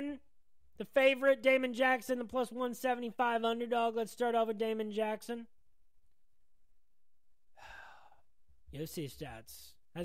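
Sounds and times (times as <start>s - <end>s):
man sighing into microphone: 7.5s - 8.3s.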